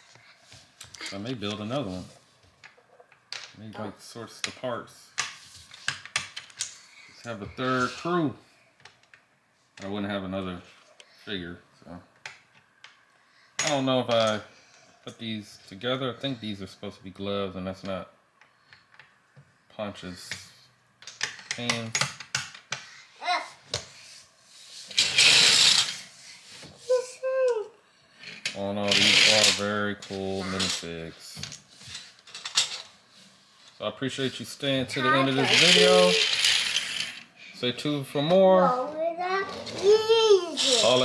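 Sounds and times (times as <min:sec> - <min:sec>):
plastic toy pieces clicking on floor: 0:25.0 - 0:26.0, 0:35.5 - 0:37.2.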